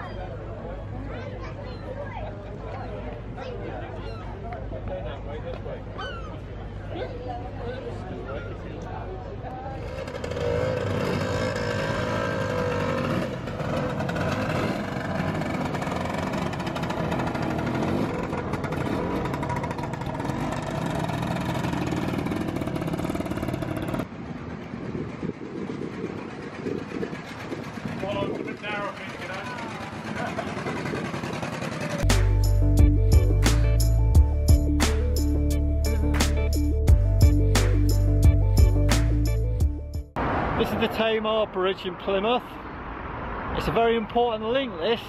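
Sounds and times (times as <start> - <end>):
motor scooter engines running: 8.9 - 34.6
people's voices: 27.8 - 32.0
music with heavy beat: 32.0 - 40.1.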